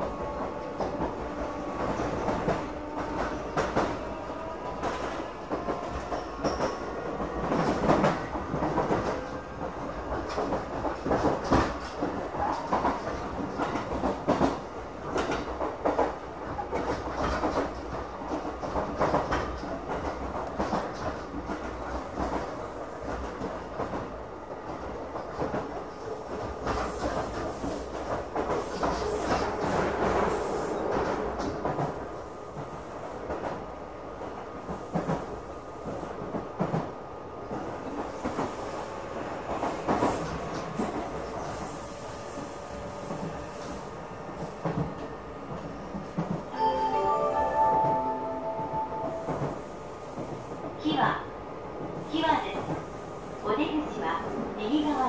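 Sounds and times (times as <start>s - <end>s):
train rumble inside car: 0.0s - 46.6s, 48.7s - 55.0s.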